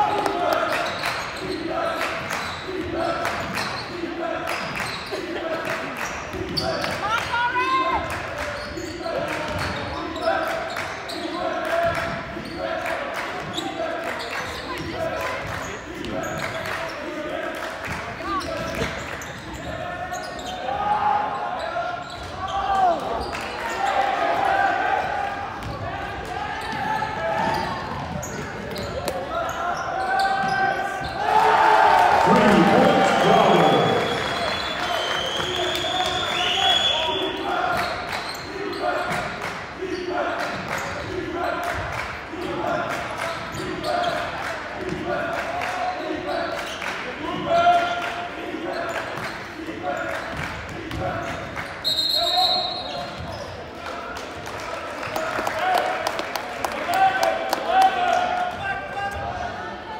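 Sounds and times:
echoing voices in gymnasium: 0.0s - 59.9s.

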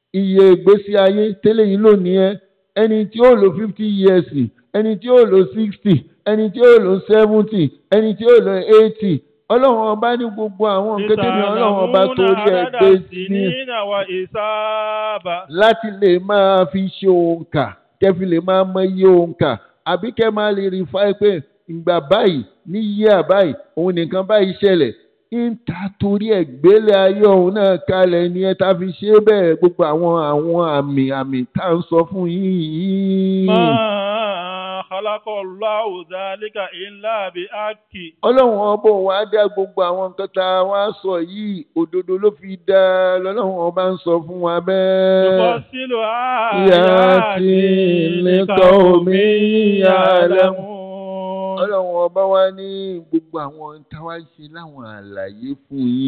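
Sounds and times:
man chanting into a microphone: 10.8s - 16.0s, 33.0s - 38.6s, 44.8s - 52.2s.

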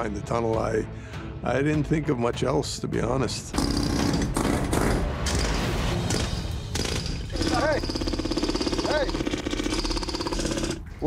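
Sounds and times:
jackhammer hammering: 3.6s - 10.9s.

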